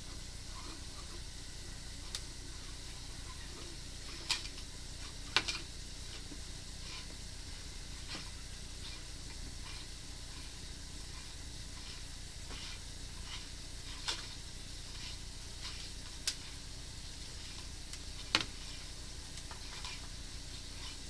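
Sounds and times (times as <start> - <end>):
crackling hiss: 0.0 - 21.0.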